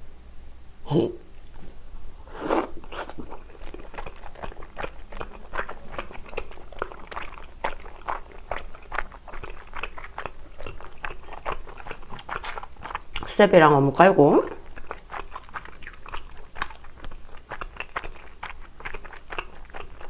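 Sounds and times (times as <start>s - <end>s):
wet chewing clicks and smacks: 2.8s - 13.5s, 14.4s - 20.0s.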